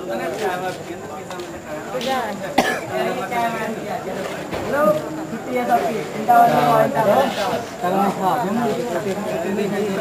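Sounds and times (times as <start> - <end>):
voices talking: 0.0 - 10.0.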